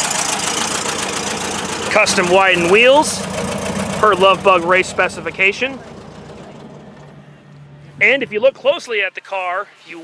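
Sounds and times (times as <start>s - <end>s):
car engine idling: 0.0s - 9.1s.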